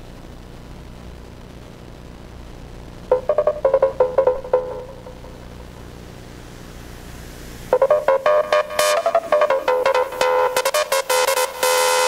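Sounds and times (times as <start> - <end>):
low steady hum: 0.0 - 12.0
electronic dance music: 3.1 - 5.4, 7.7 - 12.0
punchy synth riff: 7.7 - 12.0.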